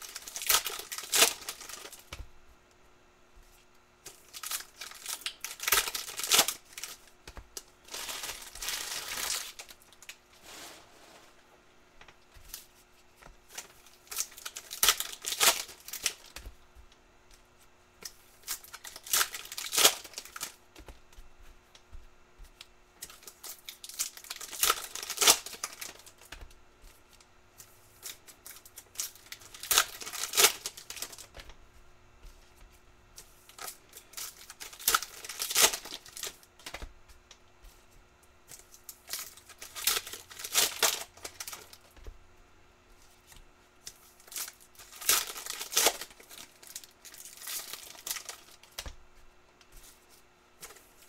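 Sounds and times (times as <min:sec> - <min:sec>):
foil wrappers tearing and crinkling: 0:00.0 - 0:02.2, 0:04.1 - 0:10.6, 0:13.5 - 0:16.5, 0:18.0 - 0:20.6, 0:23.0 - 0:26.4, 0:27.1 - 0:31.5, 0:33.2 - 0:36.8, 0:38.5 - 0:42.0, 0:43.8 - 0:48.9.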